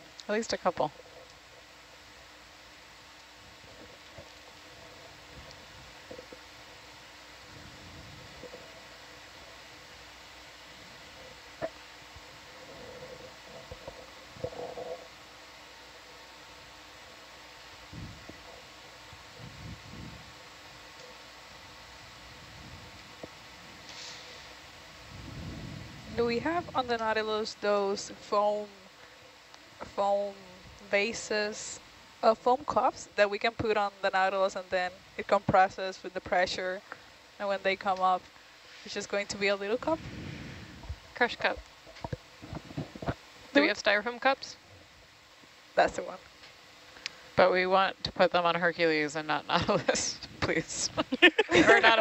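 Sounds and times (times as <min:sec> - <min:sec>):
faint constant tones: 0:00.0 - 0:52.0
steady hiss and low hum: 0:00.0 - 0:52.0
low rumbles: 0:24.7 - 0:29.0.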